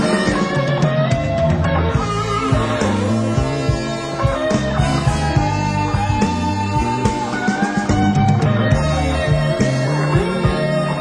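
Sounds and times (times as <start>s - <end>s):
blues band playing: 0.0s - 11.0s
electric guitar bending note: 0.0s - 11.0s.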